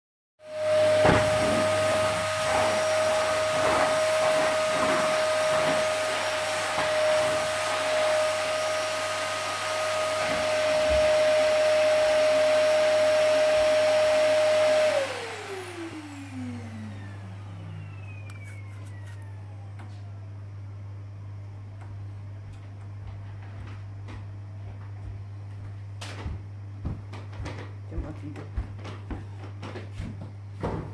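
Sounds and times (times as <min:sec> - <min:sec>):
electric fan motor whining: 0:00.4 - 0:24.6.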